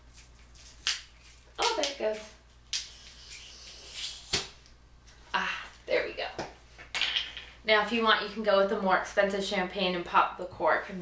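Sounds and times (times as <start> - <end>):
champagne cork popping: 2.7 - 4.6.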